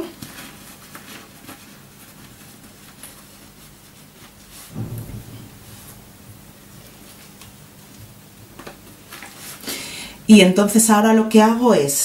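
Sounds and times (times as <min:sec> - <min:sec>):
low thump: 0:04.7 - 0:07.3.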